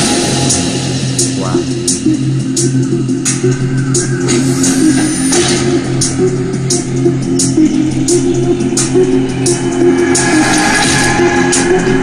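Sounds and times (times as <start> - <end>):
electronic dance music: 1.4 - 1.6.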